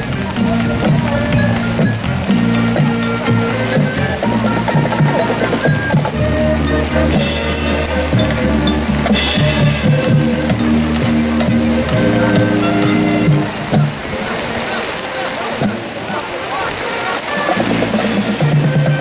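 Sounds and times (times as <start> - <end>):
bass line: 0.0 - 14.2
mallet percussion: 0.0 - 14.3, 17.4 - 19.0
brass: 0.0 - 19.0.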